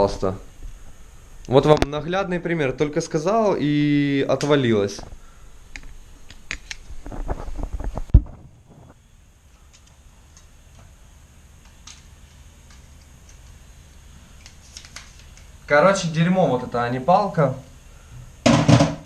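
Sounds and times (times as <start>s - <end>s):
sharp knock: 18.4s - 19.0s.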